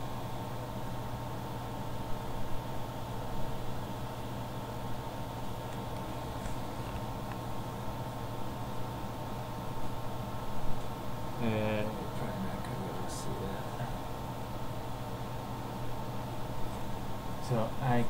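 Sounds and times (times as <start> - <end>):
electrical hum: 0.0 - 18.0
fan-like background noise: 0.0 - 18.0.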